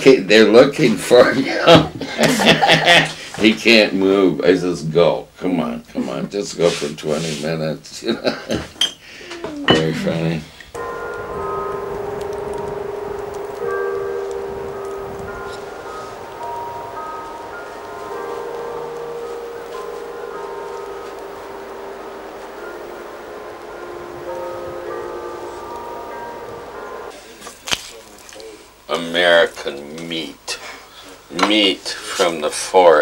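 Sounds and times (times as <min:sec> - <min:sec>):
slow soundtrack music held notes: 0:10.8 - 0:31.4.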